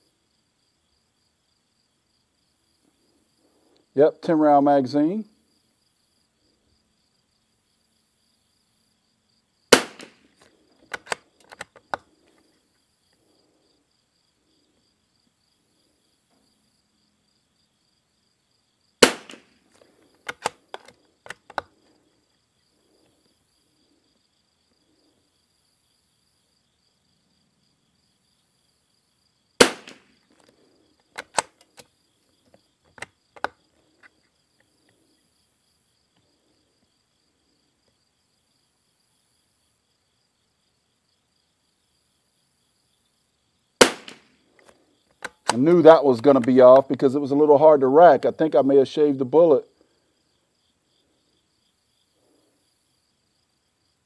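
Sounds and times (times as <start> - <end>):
crickets chirping: 0.0 - 54.0
rifle shots: 9.7 - 10.3, 19.0 - 19.6, 29.6 - 30.1, 43.8 - 44.3
metallic clicks of rifle bolt: 10.0 - 12.1, 19.3 - 21.7, 29.8 - 31.9, 32.9 - 34.2, 44.0 - 45.7.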